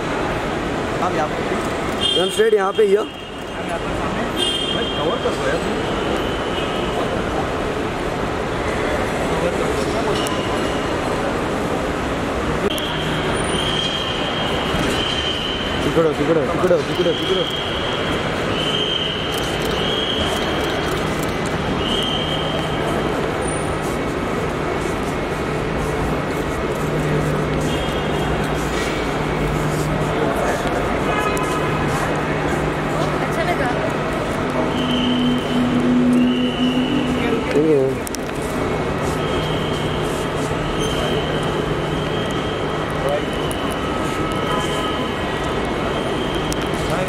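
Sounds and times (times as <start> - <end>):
faint crowd chatter: 0.0 - 47.0
general bustle: 0.0 - 47.0
traffic rumble: 0.0 - 47.0.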